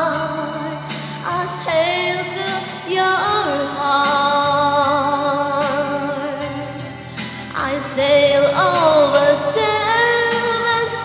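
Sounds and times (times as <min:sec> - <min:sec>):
karaoke backing track: 0:00.0 - 0:11.0
woman singing with vibrato: 0:00.0 - 0:11.0.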